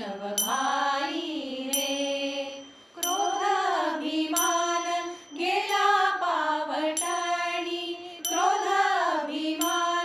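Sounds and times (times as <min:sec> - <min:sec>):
small hand cymbals ringing: 0:00.0 - 0:10.0
women singing in unison: 0:00.0 - 0:10.0.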